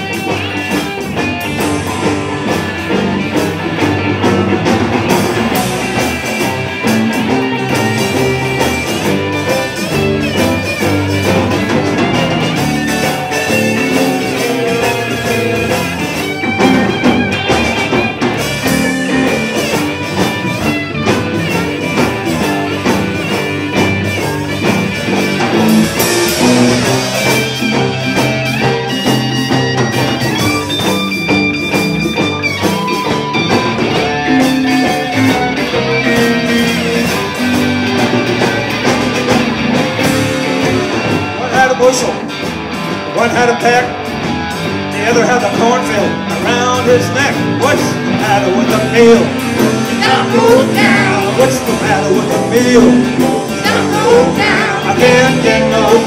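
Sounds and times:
drum kit: 0.0 - 56.0
electric bass: 0.0 - 56.0
electric guitars: 0.0 - 56.0.

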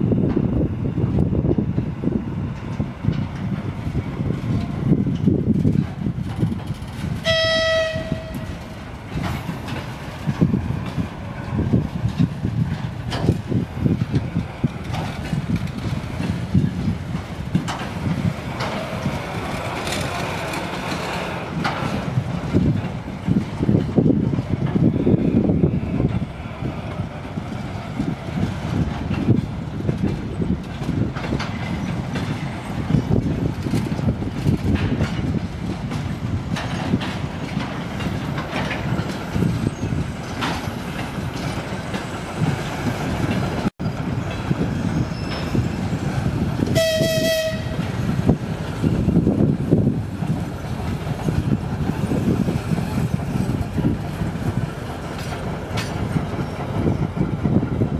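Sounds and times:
locomotive rumble: 0.0 - 57.9
train horn blast: 7.2 - 8.7, 46.8 - 47.9.

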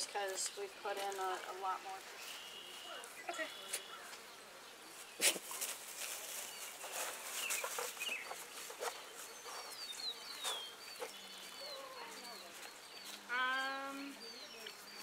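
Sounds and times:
rustles: 0.0 - 15.0
bird chirps: 2.2 - 5.6, 6.3 - 15.0.

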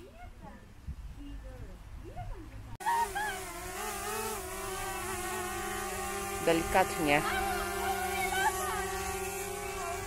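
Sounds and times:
drone propellers buzzing: 2.8 - 10.0.

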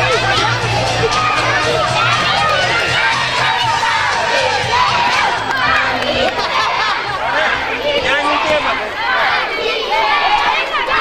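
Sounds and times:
children shouting and cheering: 0.0 - 11.0.

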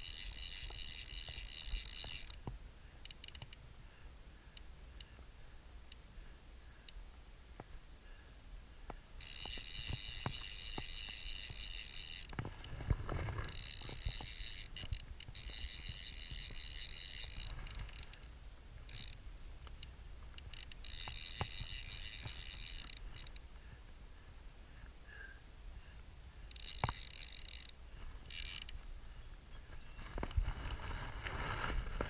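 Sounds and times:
fishing reel drag buzzing: 0.0 - 32.0.

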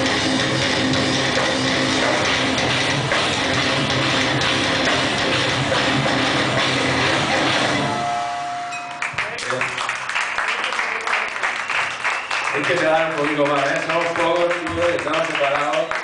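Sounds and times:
metalcore band playing live: 0.0 - 8.8
held ringing tone: 7.7 - 9.2
audience clapping: 8.9 - 16.0.

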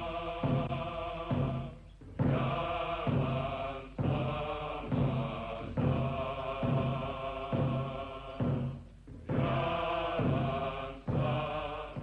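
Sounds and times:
group chanting in unison: 0.0 - 12.0.

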